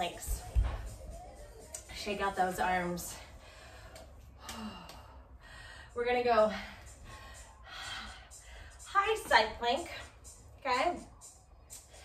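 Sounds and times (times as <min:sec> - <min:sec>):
woman speaking: 0:08.9 - 0:10.0.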